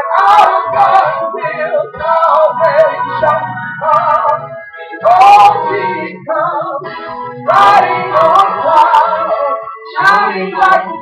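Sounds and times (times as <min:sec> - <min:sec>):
woman singing gospel song: 0:00.0 - 0:11.0.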